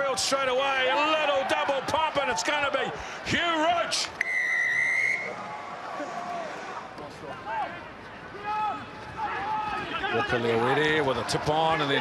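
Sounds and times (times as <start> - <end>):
stadium crowd noise: 0.0 - 12.0
referee's whistle blast: 4.2 - 5.4.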